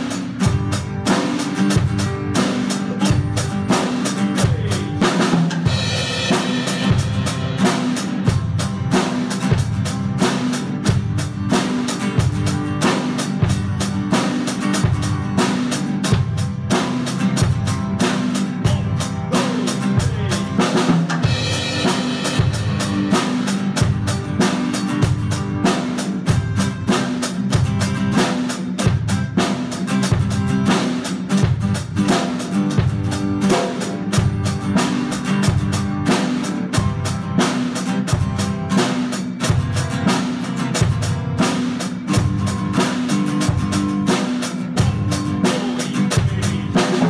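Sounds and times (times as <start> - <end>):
drum kit beat: 0.0 - 47.0
strummed acoustic guitar: 0.0 - 47.0.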